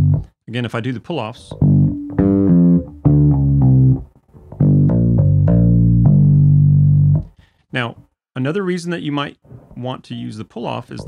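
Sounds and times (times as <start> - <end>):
electric bass guitar pull-offs: 0.0 - 0.3, 1.5 - 7.4.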